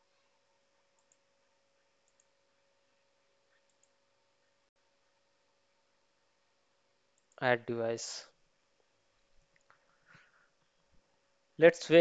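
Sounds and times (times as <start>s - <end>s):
faint room hiss: 0.0s - 12.0s
computer mouse clicks: 0.9s - 1.3s, 2.0s - 2.4s, 3.5s - 4.0s.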